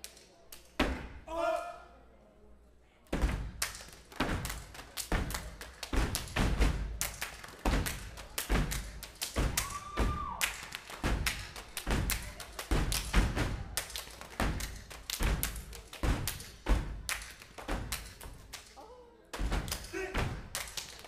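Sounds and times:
stomps on wooden stage: 3.1 - 3.6, 4.2 - 7.0, 7.6 - 10.4, 11.0 - 13.6, 14.4 - 18.1
slaps against chest and body: 3.1 - 18.7
hand claps: 3.6 - 21.0.

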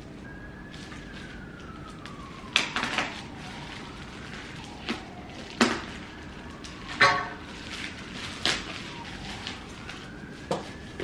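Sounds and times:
scissors cutting plastic bag: 0.8 - 11.0.

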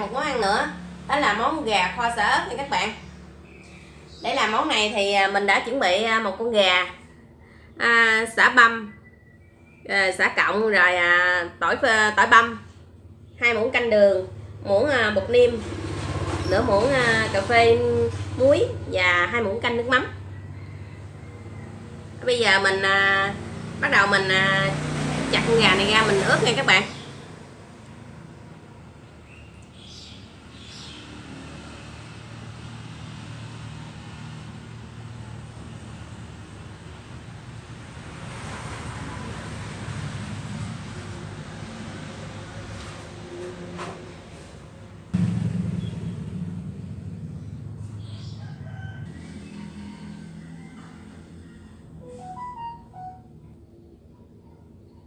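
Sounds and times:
rooster crowing: 20.2 - 22.3, 48.0 - 52.5
steady low hum: 45.0 - 52.0.

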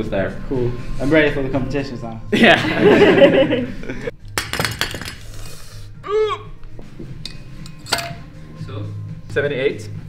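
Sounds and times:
background music: 0.0 - 10.0
metal weight plates clinking: 7.3 - 8.2.

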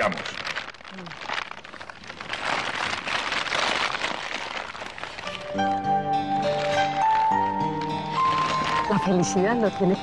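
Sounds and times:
paper wrapping rustling: 0.0 - 10.0.

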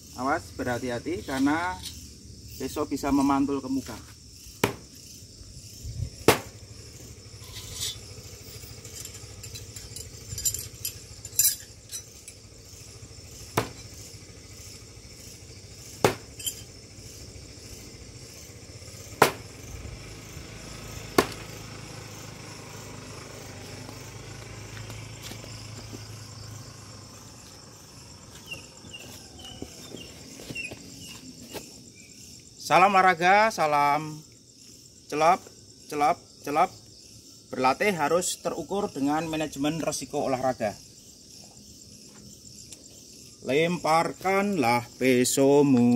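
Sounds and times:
crickets chirping: 0.0 - 45.9
knives striking wooden target: 4.6 - 5.0, 6.2 - 6.6, 13.5 - 14.0, 16.0 - 16.7, 19.2 - 19.5, 21.1 - 21.5.

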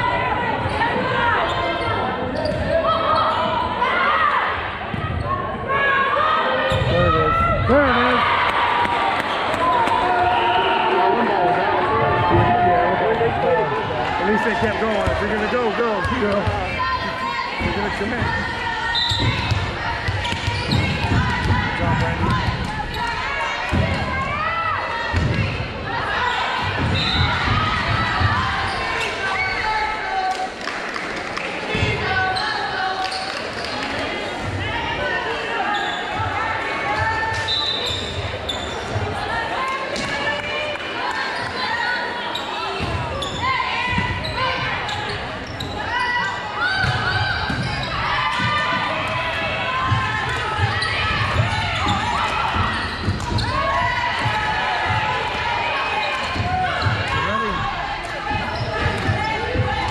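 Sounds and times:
people calling and cheering: 0.0 - 59.9
volleyball hit and bouncing: 19.1 - 24.3, 46.7 - 55.5.

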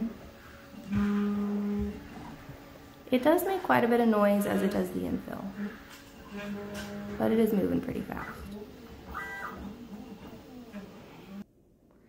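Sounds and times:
stepper motors whining: 0.0 - 3.6, 4.2 - 11.4.

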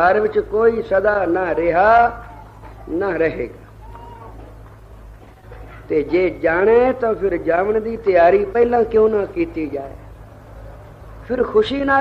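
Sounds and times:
man speaking: 0.0 - 2.3, 2.9 - 3.6, 5.9 - 10.0, 11.2 - 12.0
recording hum: 0.0 - 12.0.

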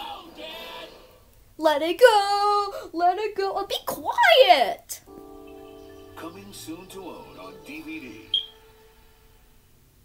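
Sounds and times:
trailer soundtrack through tv speaker: 0.0 - 1.4, 5.1 - 9.5
sharp high ding: 8.3 - 8.5
faint held tone: 8.3 - 8.6.

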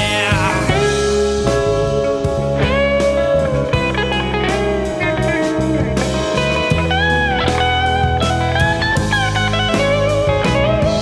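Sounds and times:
bass notes: 0.0 - 11.0
electric guitar lead: 0.0 - 11.0.

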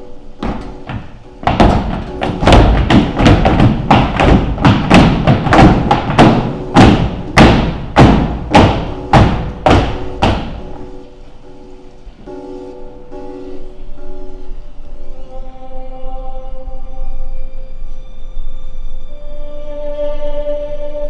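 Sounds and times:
quiet musical drone: 0.0 - 21.0
footsteps stomping on stage floor: 0.4 - 10.9.

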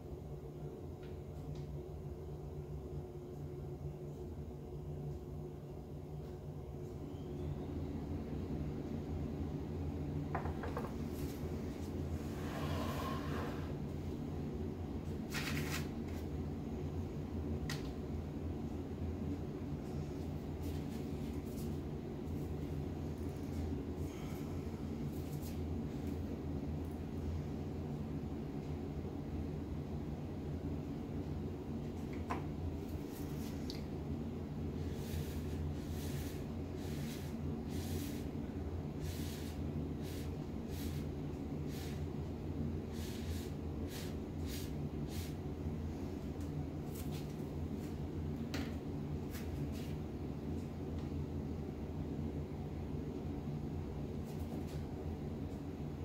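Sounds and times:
low room hum: 0.0 - 56.0.

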